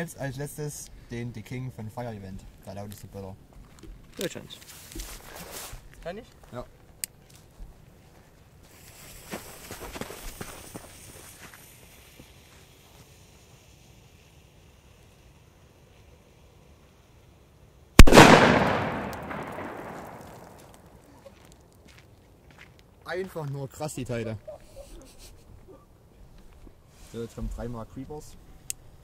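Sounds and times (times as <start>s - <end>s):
firecracker bang: 18.0s - 20.9s.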